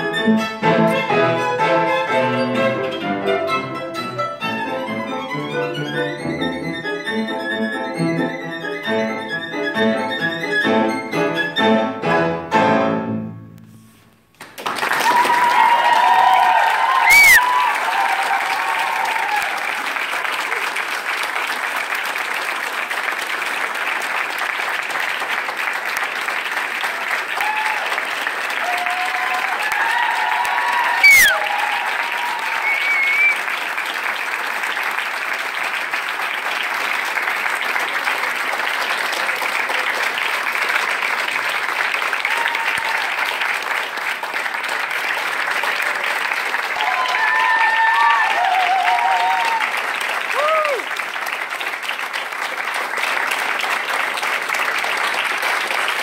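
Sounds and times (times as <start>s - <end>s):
audience applauding: 14.3s - 56.0s.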